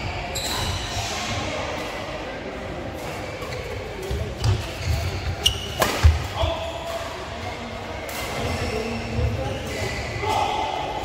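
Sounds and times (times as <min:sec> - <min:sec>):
shoe squeaks: 0:00.0 - 0:01.1, 0:03.3 - 0:06.1, 0:08.3 - 0:10.5
voices in a hall: 0:00.0 - 0:11.0
racket striking shuttlecock: 0:05.8 - 0:06.2.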